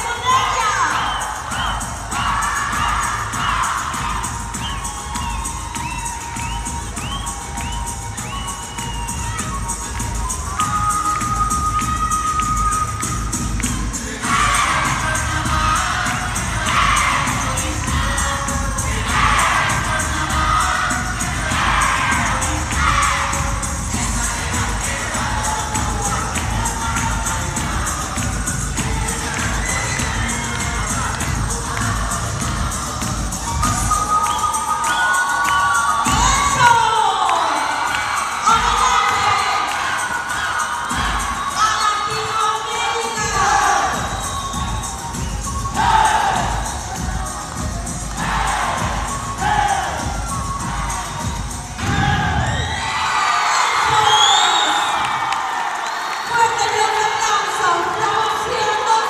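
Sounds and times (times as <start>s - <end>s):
crowd shouting and cheering: 0.0s - 59.0s
high shouts and whoops: 0.0s - 59.0s.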